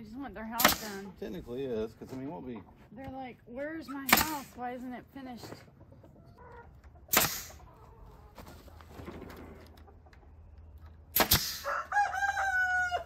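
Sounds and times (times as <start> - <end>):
rooster crowing: 11.6 - 13.0.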